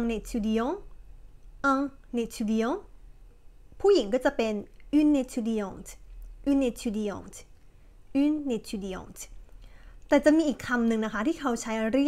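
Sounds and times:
woman speaking: 0.0s - 0.9s, 1.6s - 2.9s, 3.8s - 9.4s, 10.1s - 12.0s.

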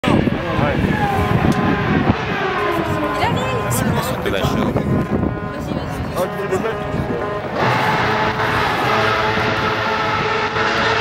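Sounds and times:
chatter of voices: 0.0s - 10.0s
distant racing car engine: 0.0s - 11.0s.

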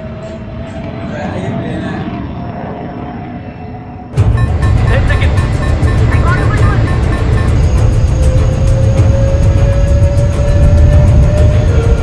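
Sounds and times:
loud deep rumble: 4.1s - 12.0s
fast regular pulse: 4.2s - 9.0s.

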